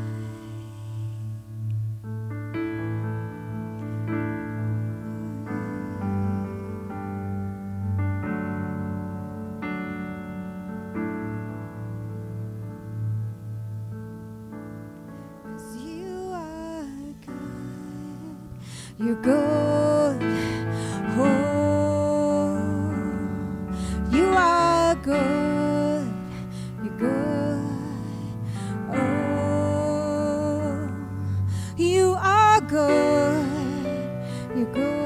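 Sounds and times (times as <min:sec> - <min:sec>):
woman singing long note: 0:00.0 - 0:01.4, 0:04.5 - 0:07.1, 0:15.6 - 0:35.0
keyboard sustained chord: 0:00.0 - 0:35.0.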